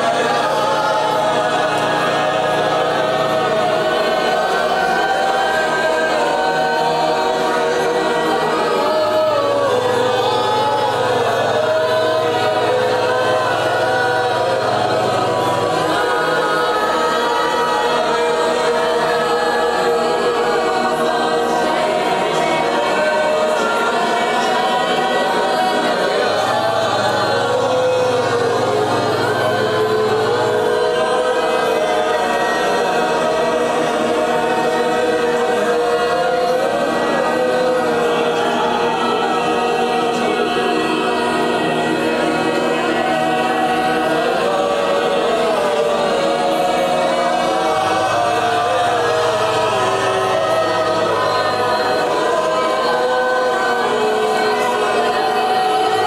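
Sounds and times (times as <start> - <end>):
congregation singing: 0.0 - 56.0.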